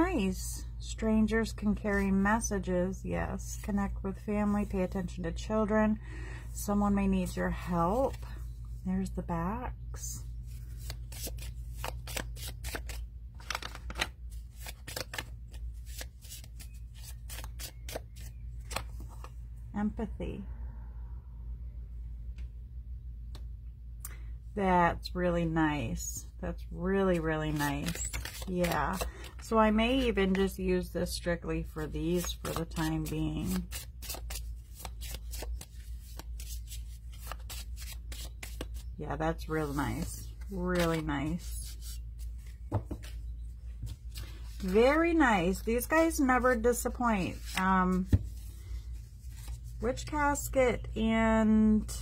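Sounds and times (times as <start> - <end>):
cards being shuffled by hand: 10.4 - 19.4, 27.1 - 30.6, 31.6 - 50.1.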